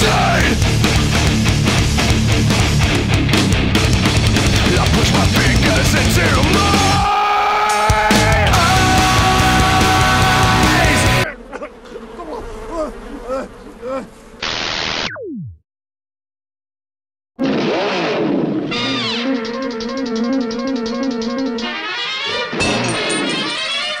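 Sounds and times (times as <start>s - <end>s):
rhythmic music: 0.6s - 7.0s, 18.9s - 22.6s
man crying out: 6.1s - 14.2s
bees buzzing: 8.8s - 15.0s, 18.6s - 22.8s.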